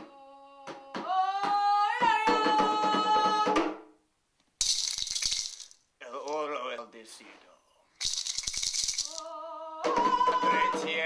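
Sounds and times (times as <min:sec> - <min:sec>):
hand rattle shaken: 0:04.6 - 0:05.8, 0:08.0 - 0:09.3.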